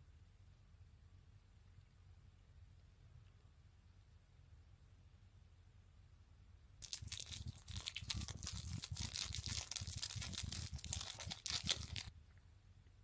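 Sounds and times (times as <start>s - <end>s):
plastic sachet crinkling and tearing: 6.8s - 12.1s.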